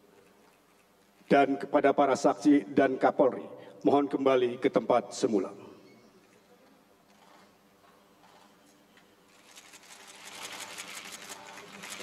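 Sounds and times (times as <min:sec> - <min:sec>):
camera shutters clicking: 0:09.4 - 0:12.0.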